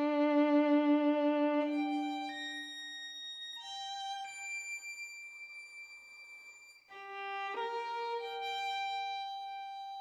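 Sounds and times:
solo violin sustained note: 0.0s - 3.0s, 6.9s - 10.0s.

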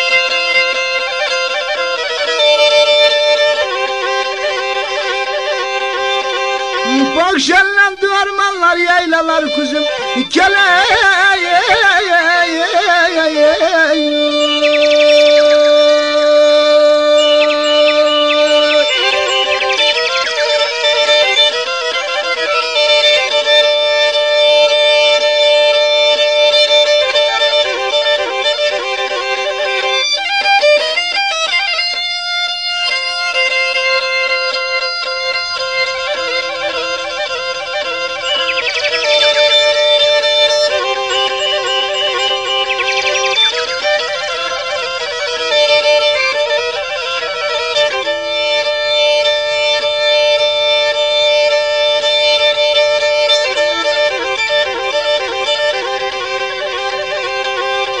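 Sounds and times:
bowed fiddle folk melody: 0.0s - 58.0s.

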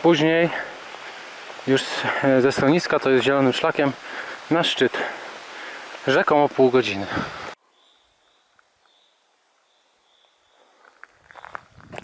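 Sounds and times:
footsteps on forest path: 0.0s - 12.0s.

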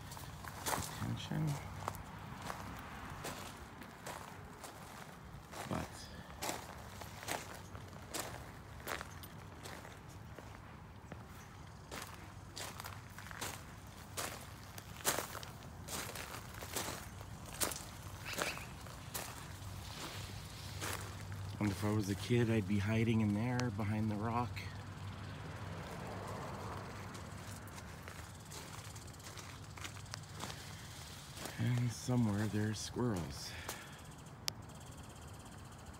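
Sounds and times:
footsteps on gravel: 0.0s - 25.2s, 25.8s - 34.0s.

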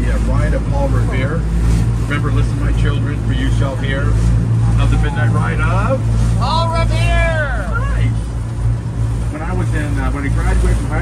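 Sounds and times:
boat engine droning: 0.0s - 11.0s
man shouting drawn-out word: 6.4s - 8.0s.

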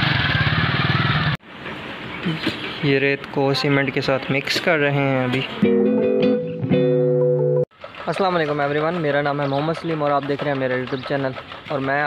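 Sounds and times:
motorcycle engine pulsing: 7.3s - 12.0s.

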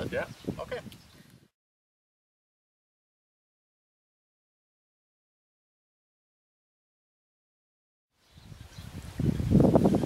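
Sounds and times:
wind buffeting microphone: 0.0s - 1.5s, 8.2s - 10.0s.

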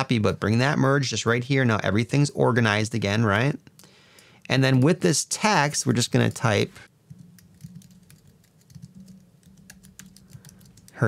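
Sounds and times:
faint keyboard typing: 6.1s - 11.0s.

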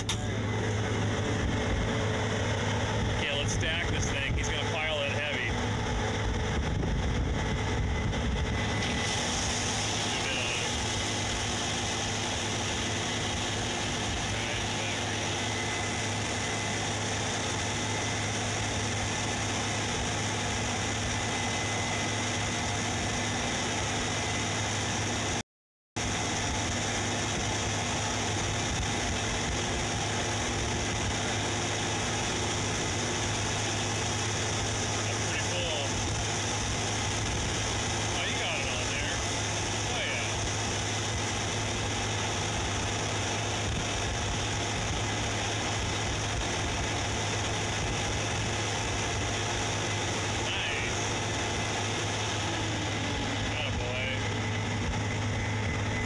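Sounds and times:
combine harvester engine drone: 0.0s - 25.4s, 26.0s - 56.0s.

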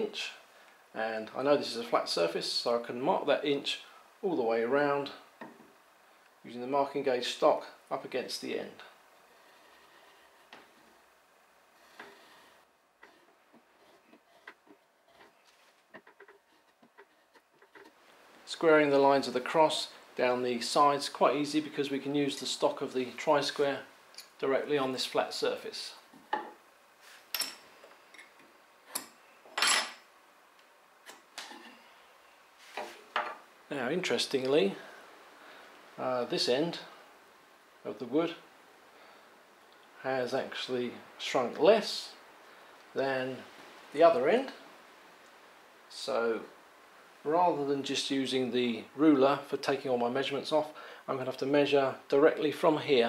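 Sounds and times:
marking gauge scratching wood: 11.9s - 18.0s.

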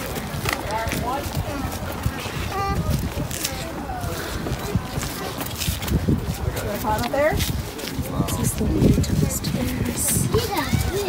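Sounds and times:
faint talk of people: 0.0s - 11.0s
outdoor background noise: 0.0s - 11.0s.

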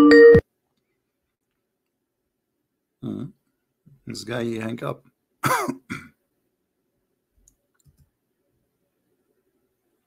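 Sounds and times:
man coughing: 5.4s - 6.2s.

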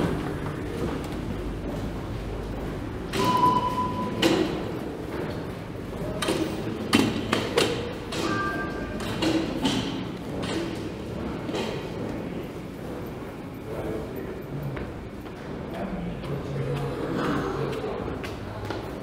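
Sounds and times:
station hubbub: 0.0s - 19.0s
card reader beep: 3.1s - 4.6s
two-tone beep: 3.2s - 4.3s.

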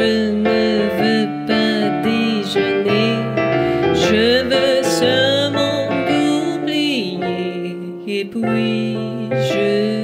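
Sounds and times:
digital piano: 0.0s - 10.0s
woman singing: 0.0s - 10.0s.

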